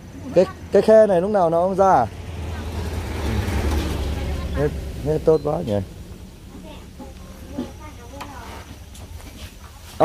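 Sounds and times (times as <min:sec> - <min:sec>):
truck driving past: 0:00.0 - 0:09.8.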